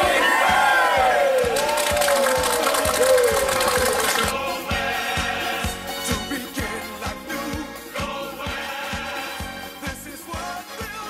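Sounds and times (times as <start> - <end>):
group cheering and whooping: 0.0 - 4.4
background music with steady beat: 0.0 - 11.0.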